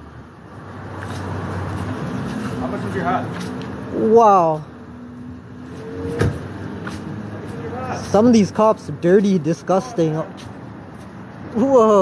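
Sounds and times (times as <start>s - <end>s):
city traffic noise: 0.0s - 12.0s
motor vehicle running: 0.0s - 12.0s.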